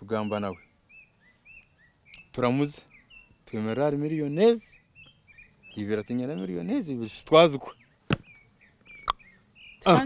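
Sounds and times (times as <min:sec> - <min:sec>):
faint bird chirps: 0:00.0 - 0:10.0
man speaking: 0:05.8 - 0:07.8.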